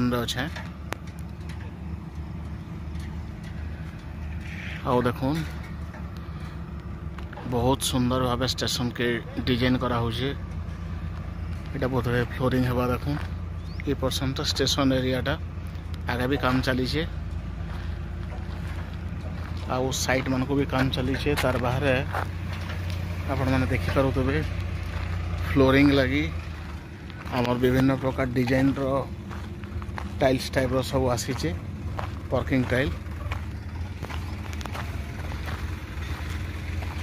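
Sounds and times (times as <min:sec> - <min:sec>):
diesel generator humming: 0:00.0 - 0:37.0
low outdoor rumble: 0:00.0 - 0:37.0
man speaking: 0:07.4 - 0:10.4, 0:27.2 - 0:29.2, 0:30.1 - 0:31.6, 0:32.2 - 0:33.1.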